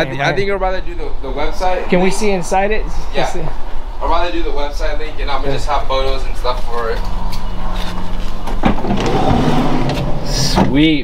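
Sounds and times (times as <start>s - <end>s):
low hum: 0.0s - 10.2s
sliding van door opening: 7.8s - 10.8s.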